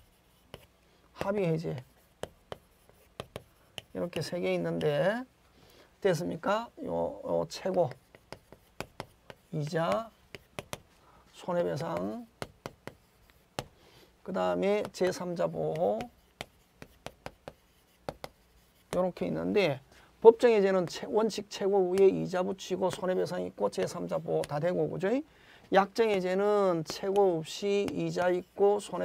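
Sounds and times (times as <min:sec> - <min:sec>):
chalk scraping on board: 0:00.0 - 0:05.0, 0:07.4 - 0:13.8, 0:14.6 - 0:19.4, 0:26.0 - 0:29.0
chalk tapping on chalkboard: 0:00.0 - 0:05.0, 0:07.4 - 0:13.8, 0:14.4 - 0:19.4, 0:21.9 - 0:22.2, 0:22.8 - 0:24.9, 0:25.8 - 0:29.0.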